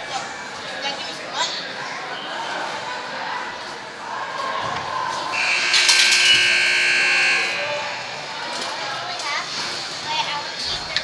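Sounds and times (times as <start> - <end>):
spectators' voices: 0.2 - 11.0
arena buzzer tone: 5.3 - 9.0.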